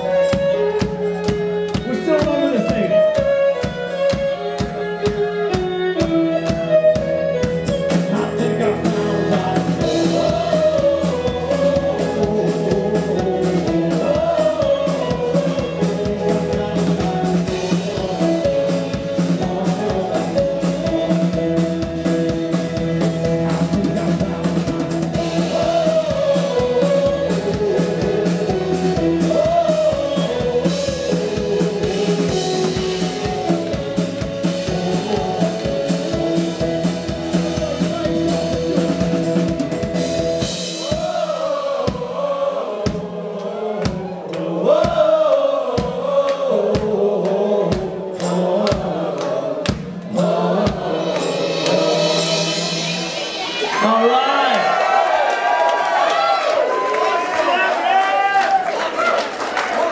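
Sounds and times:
live rock band playing: 0.0s - 43.3s, 45.7s - 57.1s
woman and man singing: 7.9s - 22.0s, 23.5s - 33.7s, 34.4s - 39.4s, 40.7s - 54.3s.

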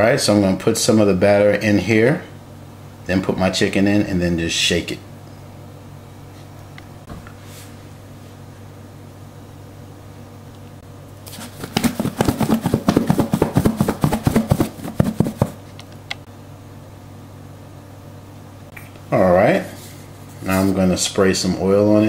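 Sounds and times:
plastic container shaking and rattling: 11.3s - 15.6s.

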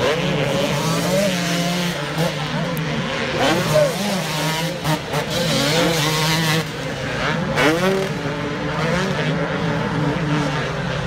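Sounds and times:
motocross bike engines droning: 0.0s - 11.0s.

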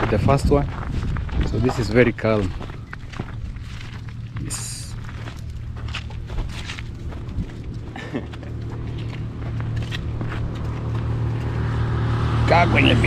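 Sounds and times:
footsteps on dirt: 0.0s - 12.3s.

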